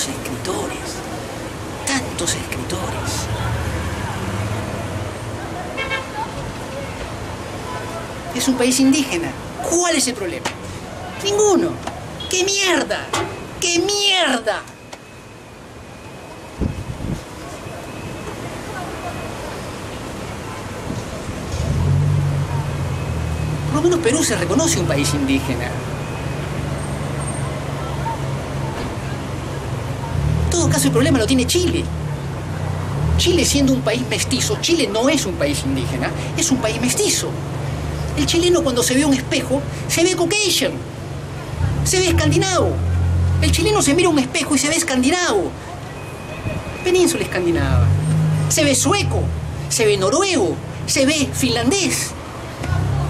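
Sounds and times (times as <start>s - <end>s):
street traffic noise: 0.0s - 53.0s.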